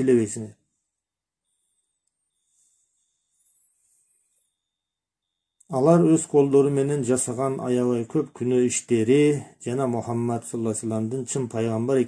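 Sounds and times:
faint high electronic whine: 0.0s - 12.0s.

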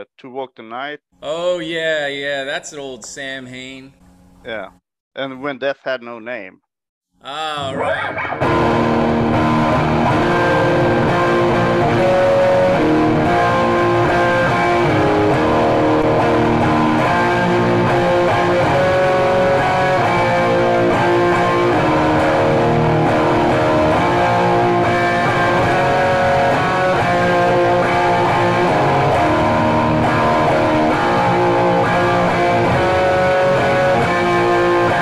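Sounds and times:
electric guitar music: 7.6s - 35.0s.

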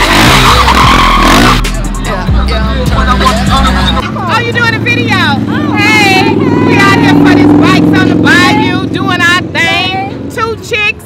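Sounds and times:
motorcycle engine running: 0.0s - 11.0s
women talking: 2.4s - 11.0s.

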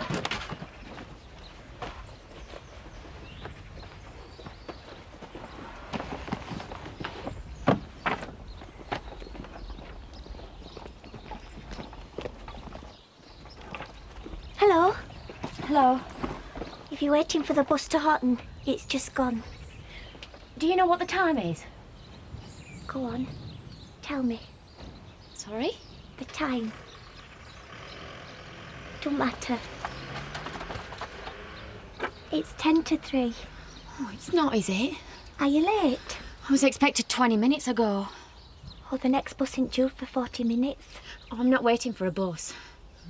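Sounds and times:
low outdoor rumble: 13.6s - 36.5s.

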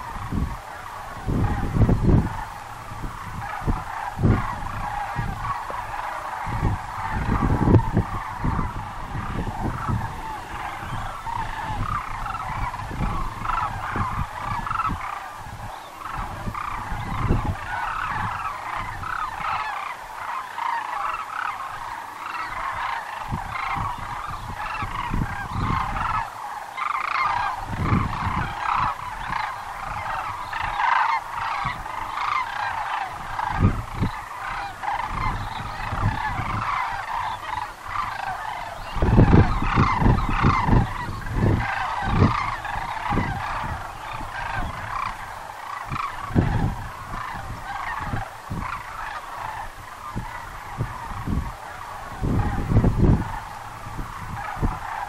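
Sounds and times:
cranes bugling calls: 0.0s - 55.0s.

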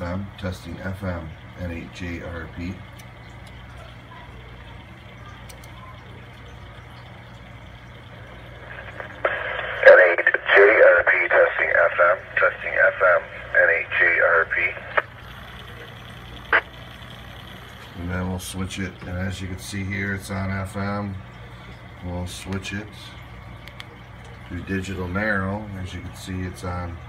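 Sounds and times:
man's voice over radio speaker: 8.7s - 15.1s.

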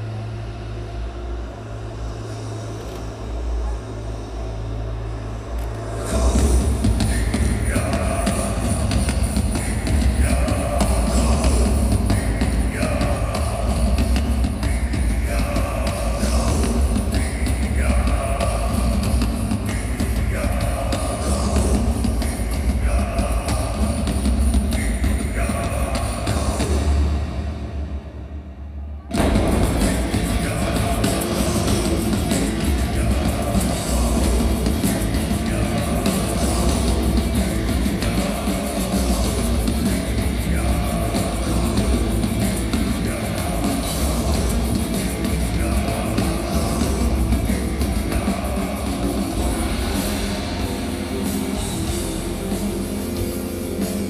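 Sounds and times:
drums: 0.0s - 54.0s
heavy low rumble: 0.0s - 54.0s
distorted electric guitars: 5.5s - 28.0s, 29.1s - 54.0s
metal band playing live: 6.0s - 27.5s, 29.1s - 54.0s.

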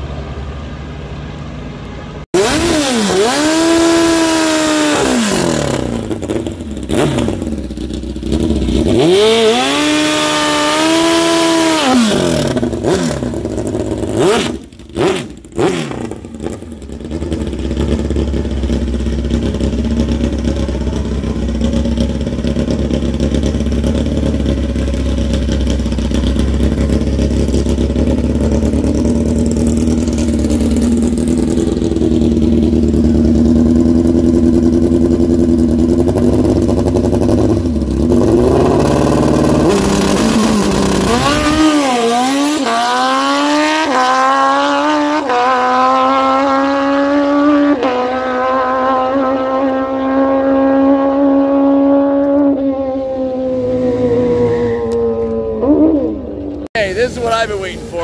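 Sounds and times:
motorcycle engine revving: 2.2s - 58.0s.

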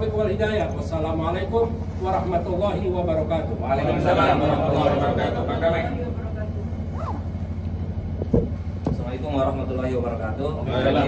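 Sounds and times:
low steady hum: 0.0s - 11.0s
microphone handling knocks: 8.2s - 9.0s.

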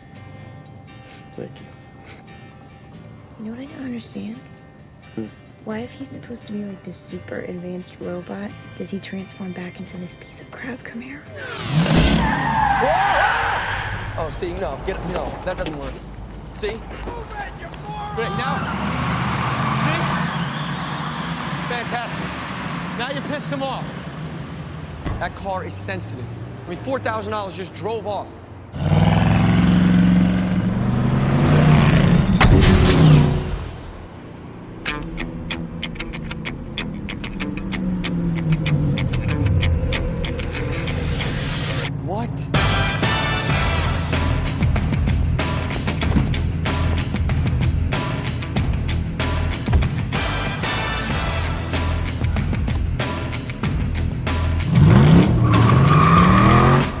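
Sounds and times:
film score music: 0.0s - 26.8s, 30.5s - 57.0s
tire squeal: 11.4s - 14.4s, 17.8s - 24.1s, 55.0s - 57.0s
car engine revving: 11.4s - 15.5s, 18.2s - 27.4s, 28.7s - 57.0s
car rushing past: 18.1s - 27.6s, 28.6s - 34.8s, 54.7s - 57.0s
film score with steady beat: 42.6s - 57.0s.

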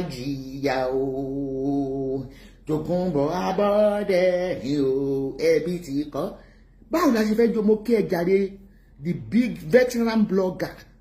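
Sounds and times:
unaccompanied voice chanting: 0.0s - 9.7s.

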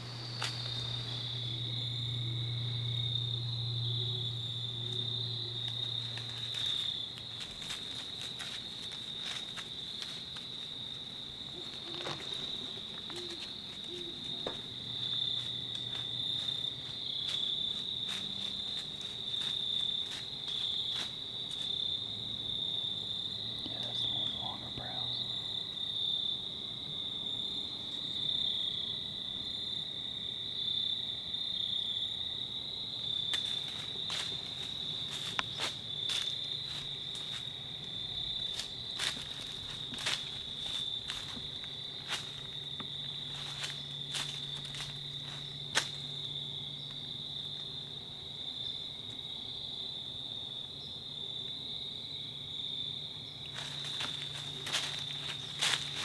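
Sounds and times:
faint low hum: 0.0s - 20.7s
crickets trilling: 0.0s - 56.0s.

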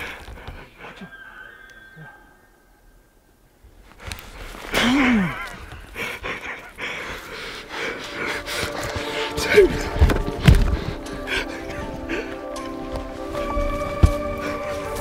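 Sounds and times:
heavy breathing: 0.0s - 2.5s, 3.9s - 15.0s
footsteps crunching through dry brush: 3.8s - 15.0s.

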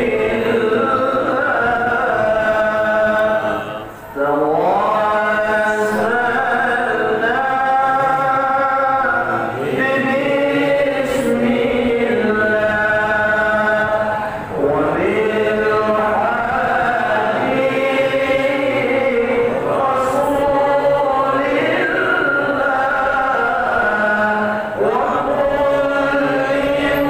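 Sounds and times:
devotional chant singing: 0.0s - 27.0s.

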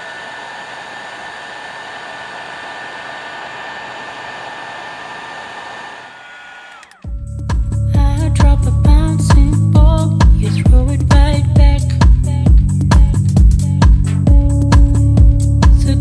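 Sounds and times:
heat gun blowing with whine: 0.0s - 7.1s.

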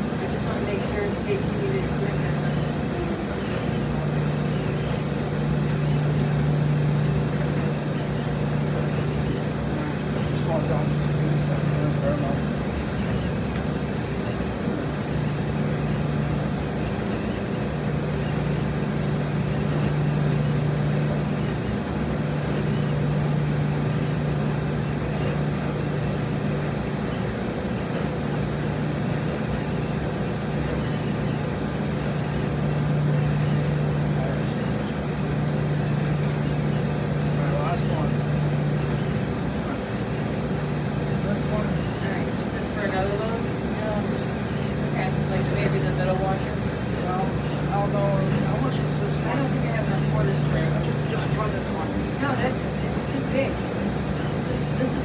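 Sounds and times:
laundromat machines humming: 0.0s - 55.0s.

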